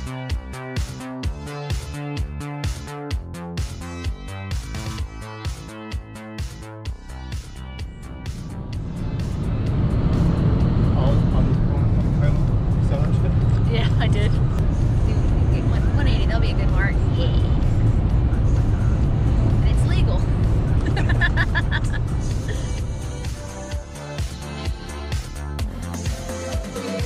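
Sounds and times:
road and wind roar in car cabin: 7.5s - 23.8s.

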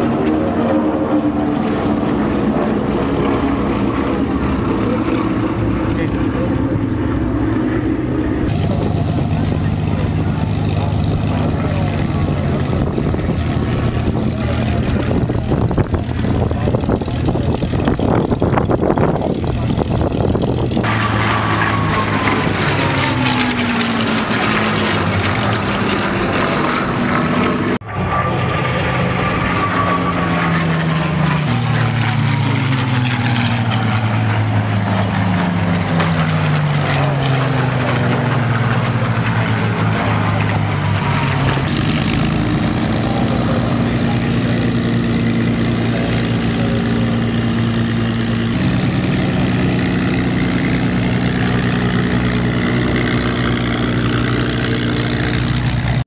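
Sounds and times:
aircraft passing close: 0.0s - 56.0s
piston aircraft engines droning: 0.0s - 56.0s.

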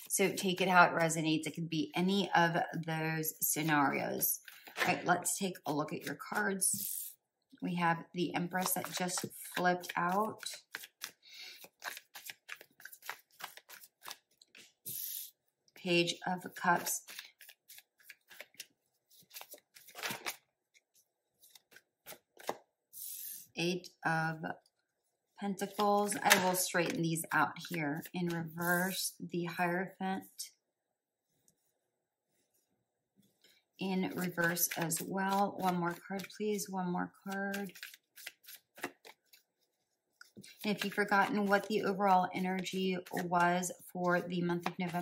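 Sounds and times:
cards being shuffled: 4.4s - 5.0s, 8.4s - 15.3s, 16.7s - 23.4s, 34.1s - 36.6s, 37.2s - 39.5s, 40.2s - 42.0s.

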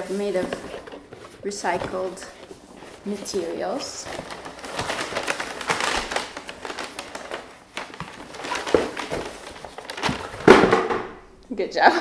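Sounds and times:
cardboard boxes being opened: 0.0s - 10.5s
paper wrapping rustling: 0.0s - 10.8s.

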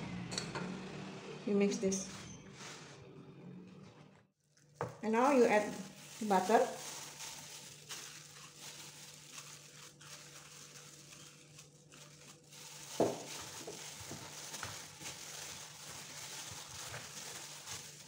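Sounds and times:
plastic glove crinkling: 4.4s - 18.0s
dough squelching: 4.6s - 18.0s.

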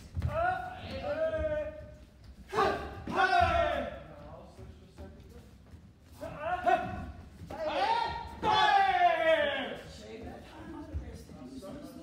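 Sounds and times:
person shouting in echoing hall: 2.5s - 4.0s, 6.5s - 9.8s.

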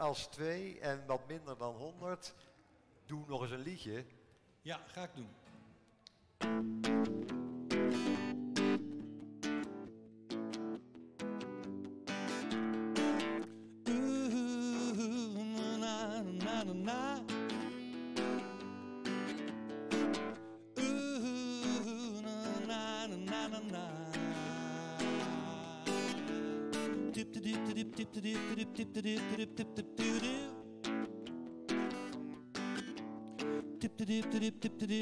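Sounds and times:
acoustic guitar strumming chords: 6.4s - 35.0s
man singing: 13.8s - 17.8s, 20.7s - 30.9s, 33.4s - 35.0s.

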